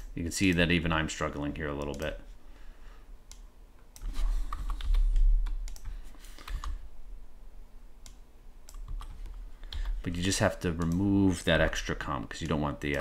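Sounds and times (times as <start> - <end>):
keyboard typing: 3.3 - 6.8, 8.7 - 11.2.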